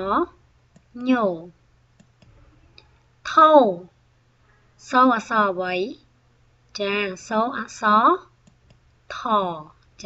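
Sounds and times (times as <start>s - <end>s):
computer mouse clicks: 0.7s - 0.9s, 2.0s - 2.9s, 8.4s - 8.9s.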